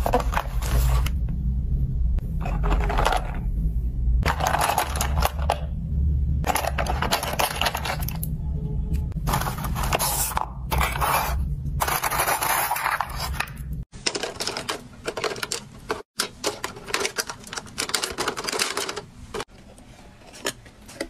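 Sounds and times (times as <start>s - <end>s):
plastic tubes clattering in drawer: 4.3s - 5.7s, 6.4s - 8.3s, 11.8s - 19.5s.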